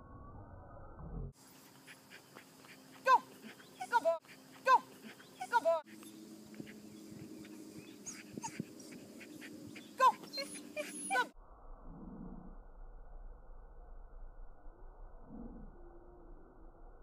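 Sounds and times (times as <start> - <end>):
small dog yipping: 7.8 - 11.4.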